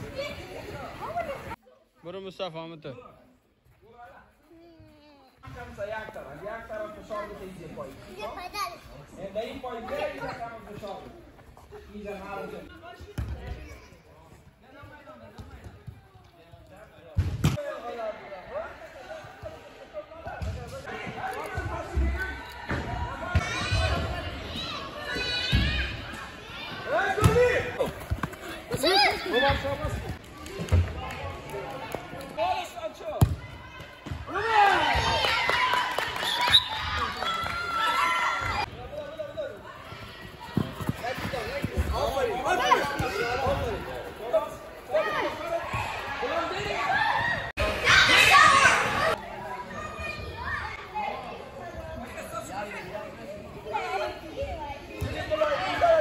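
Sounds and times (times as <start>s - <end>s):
children shouting: 45.2s - 50.8s.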